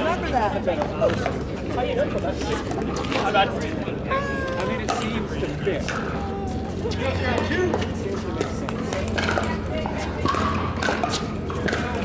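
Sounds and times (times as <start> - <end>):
hubbub of busy courts: 0.0 - 12.0
pickleball paddle hits: 4.6 - 5.2, 7.4 - 12.0.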